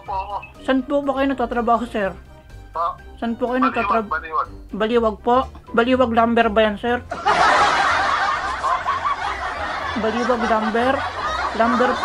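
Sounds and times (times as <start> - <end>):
man talking: 2.8 - 4.5.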